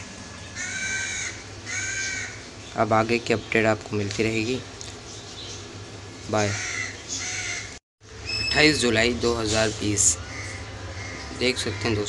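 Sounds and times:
crow cawing: 0.6 - 2.4, 6.5 - 7.8, 10.0 - 12.0
steady low hum: 8.0 - 12.0.

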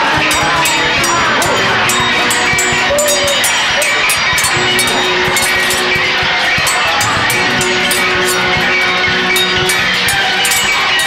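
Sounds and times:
film score sustained tones: 0.0 - 11.0.

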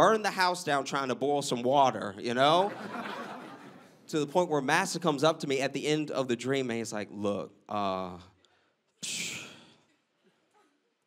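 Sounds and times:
man saying uh: 7.0 - 8.3, 9.0 - 9.7.

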